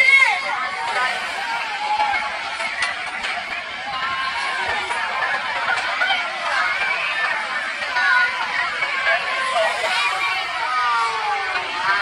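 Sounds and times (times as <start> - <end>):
babble of voices: 0.0 - 12.0
crowd cheering: 0.0 - 12.0
long drawn-out whoops: 9.1 - 12.0.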